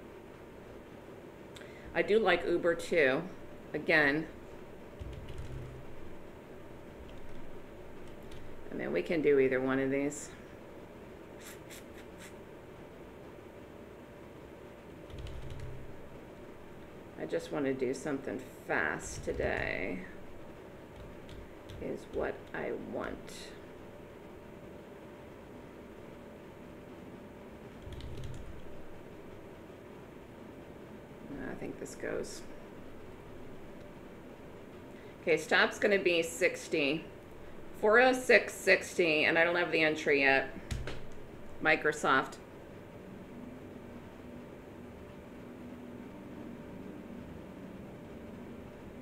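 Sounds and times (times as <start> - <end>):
low hum: 0.0 - 11.4, 12.4 - 35.4, 36.8 - 38.5, 39.3 - 49.0
faint room hiss: 0.0 - 49.0
keyboard keystrokes: 15.1 - 15.8, 27.8 - 28.6.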